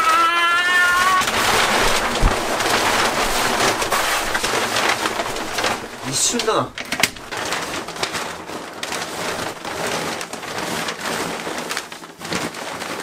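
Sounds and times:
water pouring and splashing: 0:00.7 - 0:10.4
water balloon bursting: 0:00.9 - 0:07.4.

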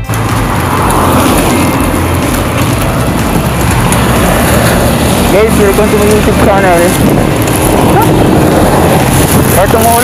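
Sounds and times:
tyres hissing on wet road: 0:00.0 - 0:10.0
low rumble: 0:00.1 - 0:10.0
wind on microphone: 0:00.2 - 0:10.0.

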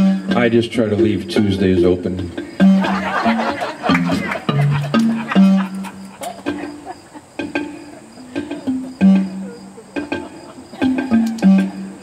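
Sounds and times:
low struck notes: 0:00.0 - 0:12.0
light percussion ticks: 0:03.9 - 0:12.0.

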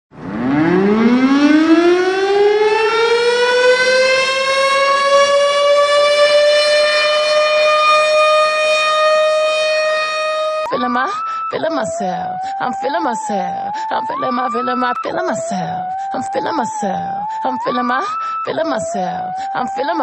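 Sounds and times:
siren wailing: 0:00.2 - 0:20.0.

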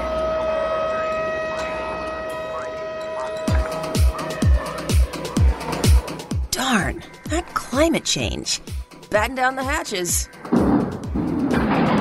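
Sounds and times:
siren-like warning tone: 0:00.0 - 0:06.4.

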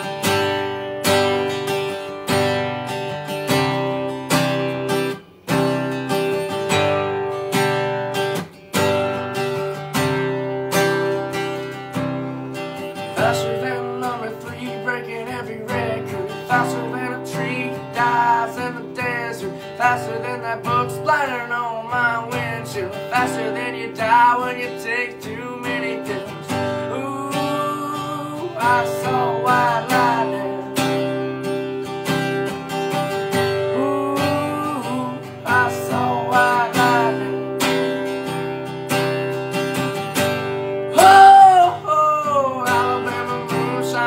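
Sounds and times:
acoustic guitar strumming: 0:00.0 - 0:44.0
man singing: 0:11.7 - 0:38.1, 0:40.8 - 0:44.0.

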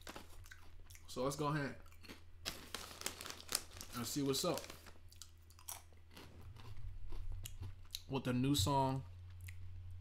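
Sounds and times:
person chewing crunchy snack: 0:00.0 - 0:01.1, 0:01.8 - 0:03.4, 0:05.1 - 0:08.1.

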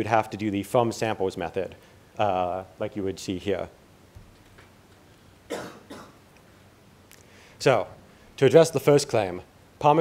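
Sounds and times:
person coughing: 0:05.5 - 0:06.2.

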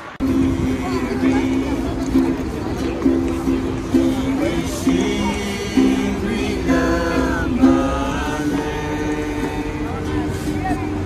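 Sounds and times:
ukulele strumming: 0:00.0 - 0:11.0
person singing: 0:03.8 - 0:10.6.

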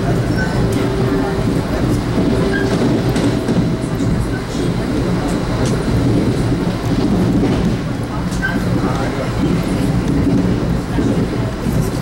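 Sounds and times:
train wheels rumbling on rails: 0:00.0 - 0:12.0.

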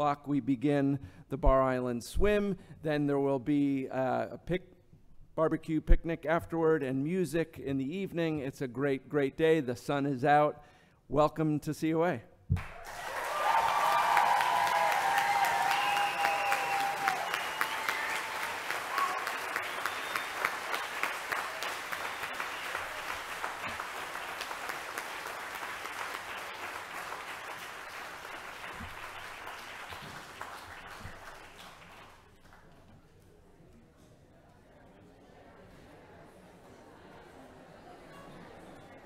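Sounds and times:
large audience applauding: 0:12.6 - 0:32.7.

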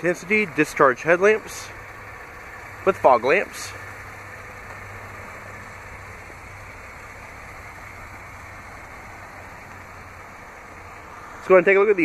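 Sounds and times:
car engine idling: 0:00.0 - 0:12.0
even hiss: 0:00.0 - 0:12.0.

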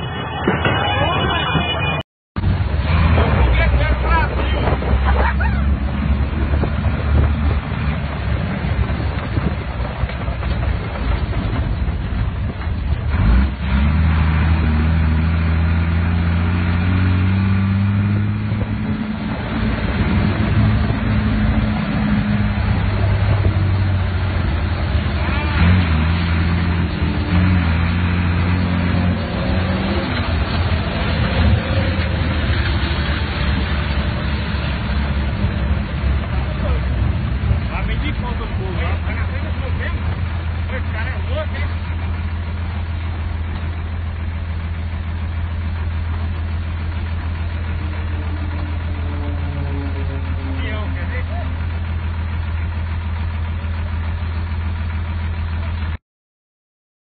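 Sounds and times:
vehicle engine running: 0:00.0 - 0:56.0.

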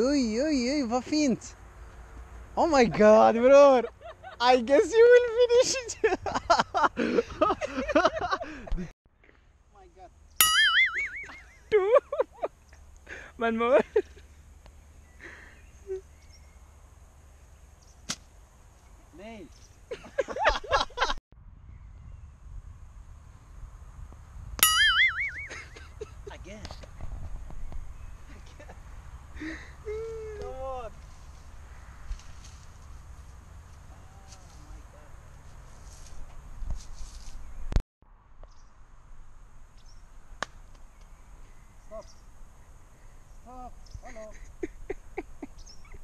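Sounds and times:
cartoon boing sound effect: 0:10.4 - 0:11.4, 0:24.6 - 0:25.5
bird calling: 0:10.4 - 0:11.8, 0:24.6 - 0:26.0, 0:42.9 - 0:46.0.

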